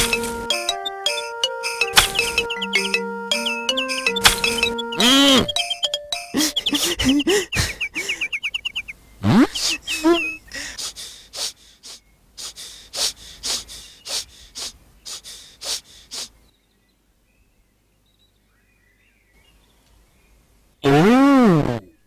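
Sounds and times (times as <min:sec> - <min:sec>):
cartoon pitch swoops: 0:02.0 - 0:06.6
fast bird-like chirps: 0:02.0 - 0:10.6, 0:11.4 - 0:16.4.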